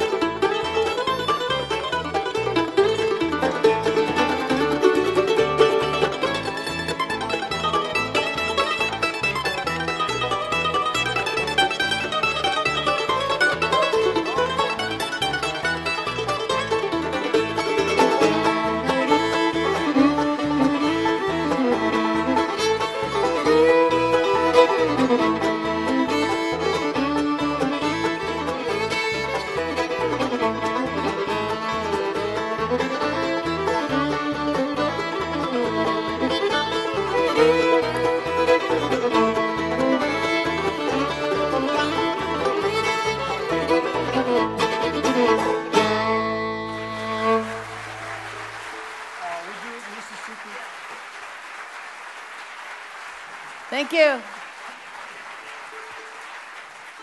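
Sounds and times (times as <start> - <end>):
guitar: 0.0 - 47.8
mandolin picking: 0.0 - 47.8
fiddle: 0.0 - 48.5.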